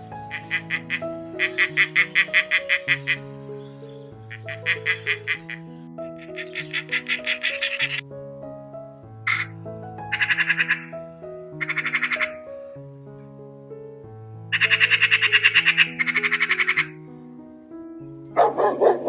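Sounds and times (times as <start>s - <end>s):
background music: 0.0s - 19.0s
magpies chattering: 0.2s - 8.0s, 9.3s - 12.5s, 14.5s - 17.0s
dog barking: 18.3s - 19.0s.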